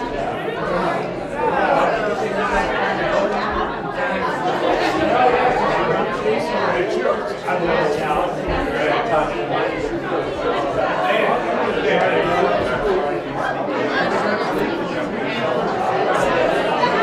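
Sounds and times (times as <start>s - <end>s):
many people chatting: 0.0s - 17.0s.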